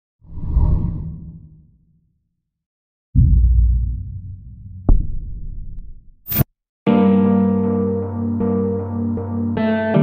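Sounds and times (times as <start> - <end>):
whoosh: 0.2 - 1.7.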